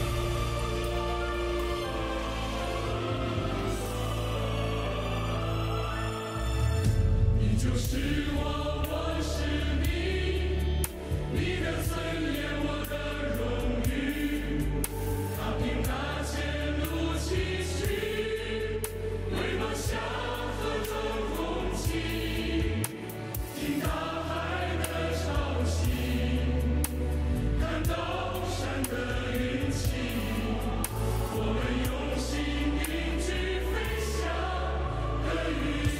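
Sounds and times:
sustained bass: 0.0 - 22.9, 23.7 - 35.9
choir singing with instruments: 0.0 - 35.9.

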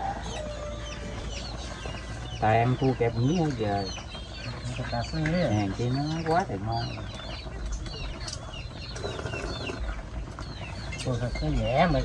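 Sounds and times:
birds chirping: 0.0 - 12.0.

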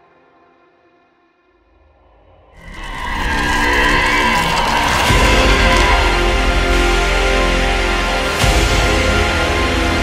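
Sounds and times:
harsh screeching swell: 1.7 - 7.8.

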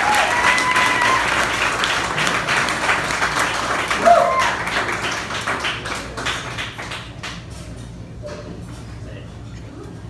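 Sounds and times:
audience clapping: 0.0 - 7.5.

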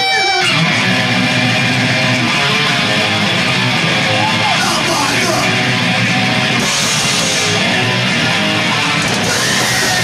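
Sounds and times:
thrash band playing loud: 0.0 - 10.0.

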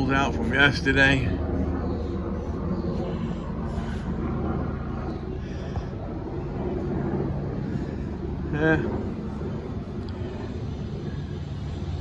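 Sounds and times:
motor droning: 0.0 - 12.0.

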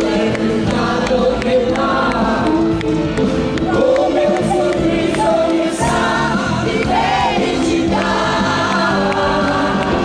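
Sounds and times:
pop song duet with band: 0.0 - 2.8, 3.6 - 10.0.

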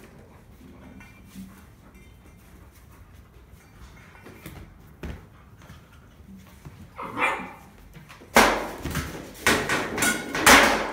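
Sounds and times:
dog bark: 7.0 - 7.7.

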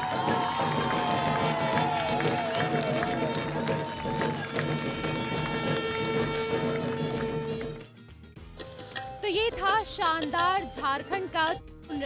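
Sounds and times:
steady drumbeats: 0.0 - 8.0.

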